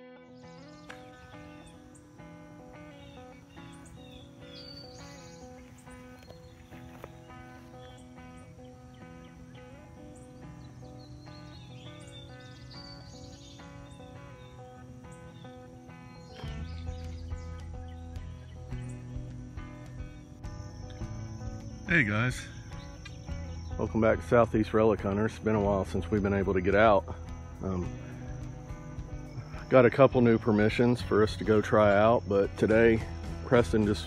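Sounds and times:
intro music with repeating notes: 0.0s - 34.0s
deep bass part: 16.4s - 31.6s.

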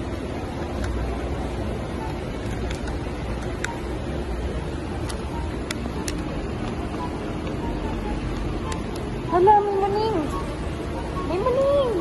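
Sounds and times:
car interior engine and road noise: 0.0s - 12.0s.

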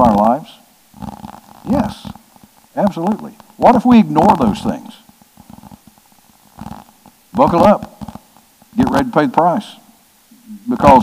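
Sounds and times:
faint vocal murmur: 0.0s - 9.0s.

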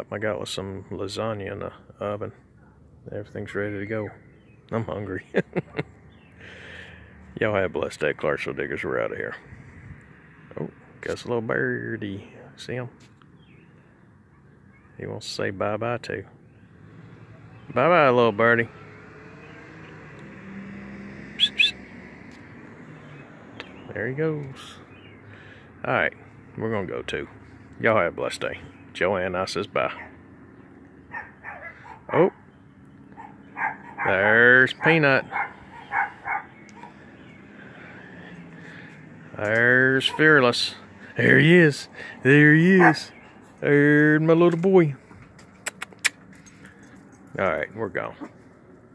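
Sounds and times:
distant engine hum: 0.0s - 48.9s
sharp bird chirps: 21.3s - 21.8s.

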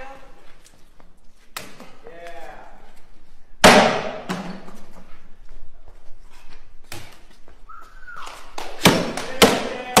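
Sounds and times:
wooden board splitting: 8.2s - 10.0s.

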